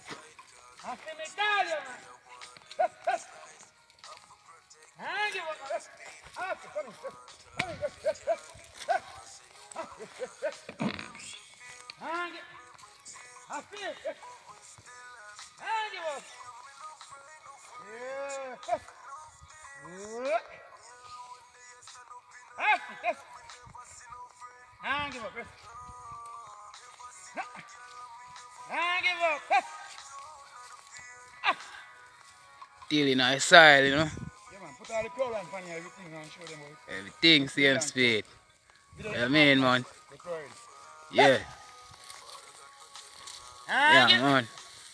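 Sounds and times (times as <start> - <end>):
man singing in drawn-out tones: 0.0 - 38.3
person calling to cattle: 0.4 - 16.8, 17.5 - 20.9, 22.4 - 23.4, 24.8 - 32.0, 32.9 - 38.3, 39.0 - 44.6
people talking: 0.8 - 14.4, 15.6 - 16.4, 17.7 - 18.9, 19.8 - 20.6, 24.8 - 25.7, 28.6 - 30.0, 32.9 - 38.3, 39.0 - 41.7, 43.7 - 44.6
faint sustained musical tones: 23.2 - 44.9.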